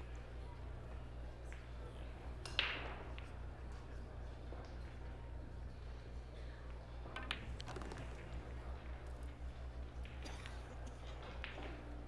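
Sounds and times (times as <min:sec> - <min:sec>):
steady low hum: 0:00.0 - 0:12.0
pool balls clicking: 0:07.1 - 0:10.2.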